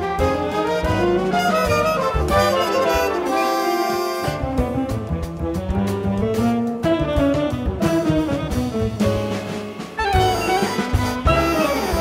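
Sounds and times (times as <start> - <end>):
jazz big band playing: 0.0 - 12.0
trombones and trumpets: 0.0 - 12.0.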